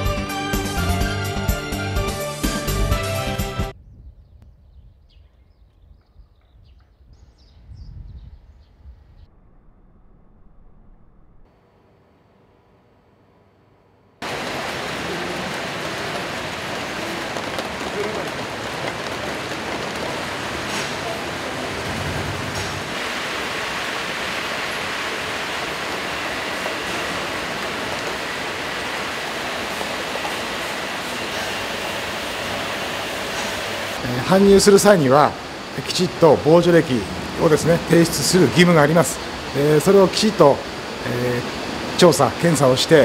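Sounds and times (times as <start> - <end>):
conveyor machinery running: 11.6 - 43.0.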